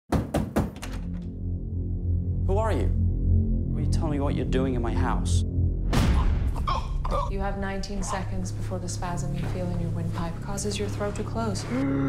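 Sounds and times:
knocks on a door: 0.1s - 1.2s
low music drone: 0.9s - 12.0s.

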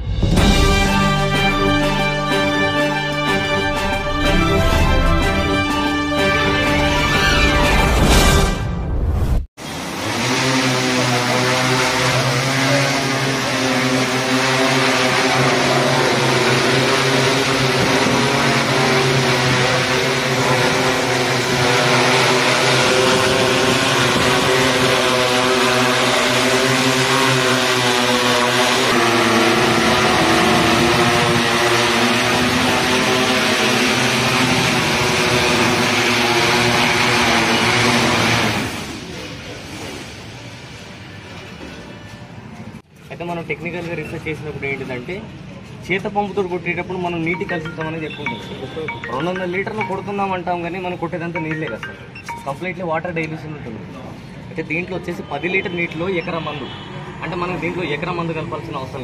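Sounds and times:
drone propellers buzzing: 0.0s - 8.0s, 9.6s - 41.9s.

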